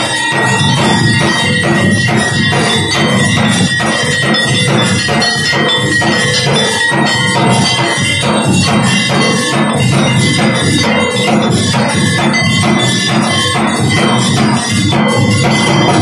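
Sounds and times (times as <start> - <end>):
brass bell ringing: 0.0 - 16.0
metal percussion beat: 0.0 - 16.0.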